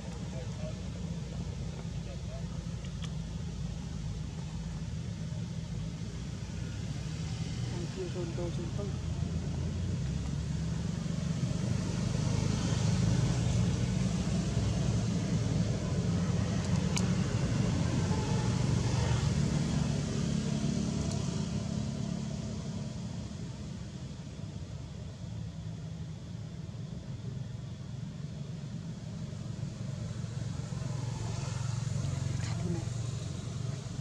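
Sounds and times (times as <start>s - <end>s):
motor vehicle passing: 30.3s - 34.0s.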